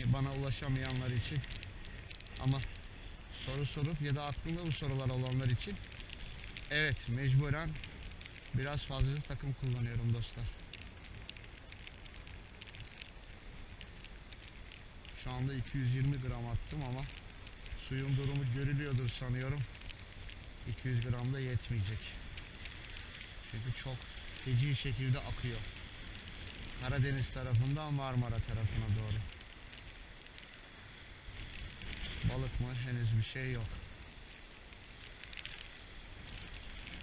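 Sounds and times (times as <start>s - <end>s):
hiss of wind and water: 0.0s - 37.0s
light rain pattering: 0.0s - 37.0s.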